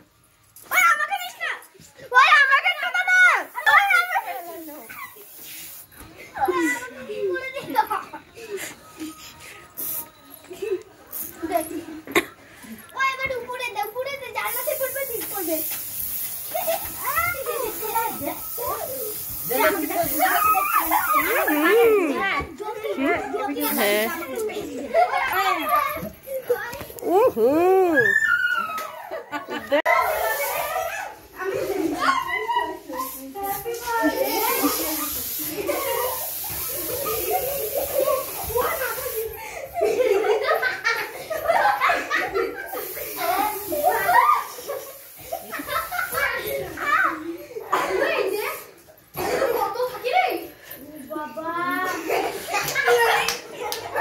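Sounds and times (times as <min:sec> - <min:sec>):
children shrieking and calling out: 0:00.6 - 0:05.5, 0:12.9 - 0:50.7.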